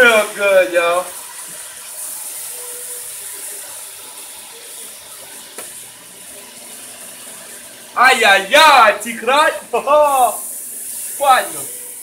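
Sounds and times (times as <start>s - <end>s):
meat sizzling in hot oil: 0.0s - 12.0s.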